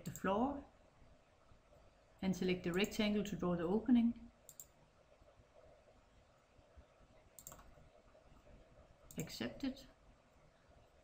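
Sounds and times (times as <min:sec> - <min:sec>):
faint mouse clicks: 0:04.4 - 0:04.8, 0:07.4 - 0:07.8, 0:09.1 - 0:09.3.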